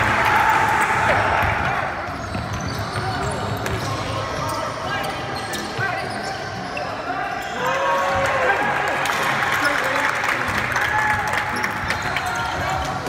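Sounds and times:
voices in echoing gym: 0.0s - 13.0s
sneaker squeaks: 1.9s - 8.3s, 11.5s - 13.0s.

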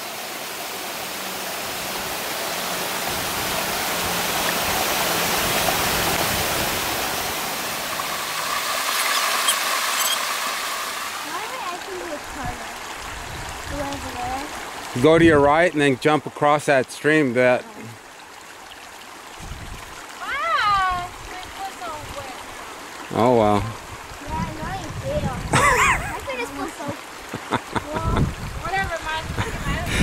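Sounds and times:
water rushing over rocks: 0.0s - 30.0s.

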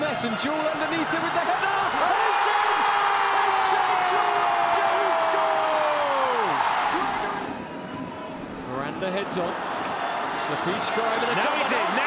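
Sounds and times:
stadium crowd cheering: 0.0s - 8.6s, 9.2s - 12.0s.

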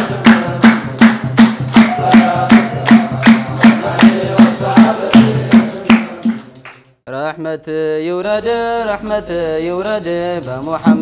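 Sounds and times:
percussion keeping time: 0.0s - 6.8s, 10.7s - 11.0s
group hand-clapping: 0.0s - 7.0s
devotional chant: 0.0s - 11.0s.

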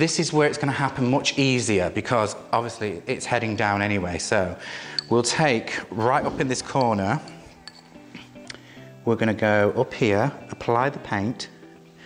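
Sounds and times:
faint background music: 0.0s - 12.0s
paintbrush tapping bowl: 6.2s - 8.0s.

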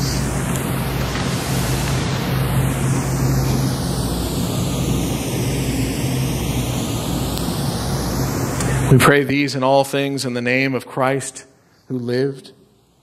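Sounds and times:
low hum: 0.0s - 10.2s
steady rushing noise: 0.0s - 10.7s.

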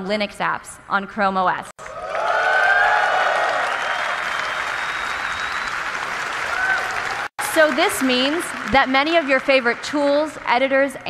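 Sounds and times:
audience clapping and cheering: 1.8s - 10.8s.

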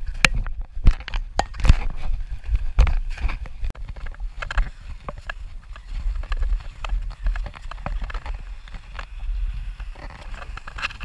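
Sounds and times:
sharp clicks and knocks of ski gear: 0.0s - 11.0s
wind rumble on microphone: 0.0s - 11.0s.

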